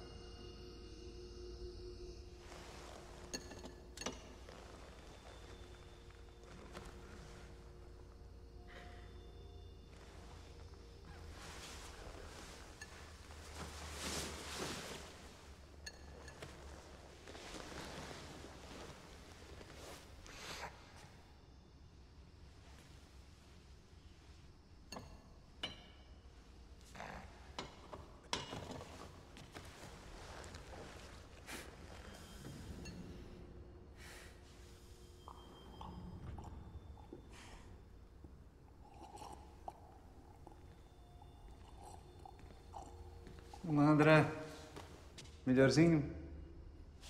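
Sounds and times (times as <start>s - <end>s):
soft rustling and swishing: 2.4s - 8.2s, 9.8s - 21.2s, 28.5s - 33.4s
man eating soup: 34.6s - 45.1s.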